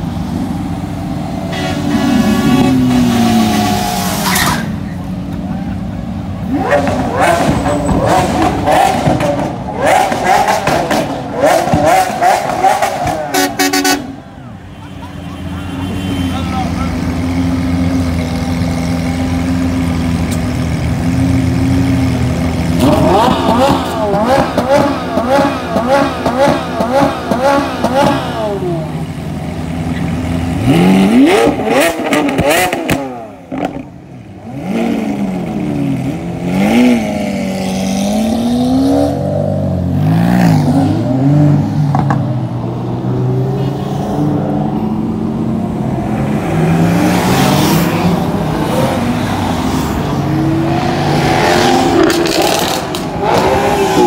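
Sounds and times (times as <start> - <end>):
sports car engine revving: 6.3 - 14.1, 16.9 - 54.0.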